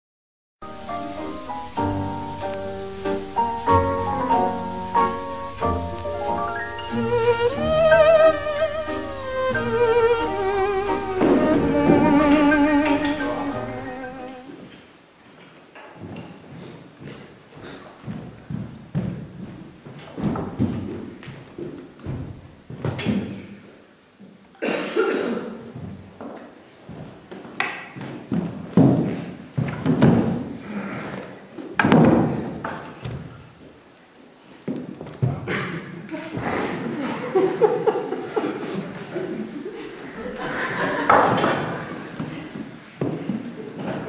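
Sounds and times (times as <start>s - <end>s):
sustained melody with vibrato: 0.6s - 14.5s
thuds and knocks: 28.0s - 30.5s, 31.8s - 33.3s.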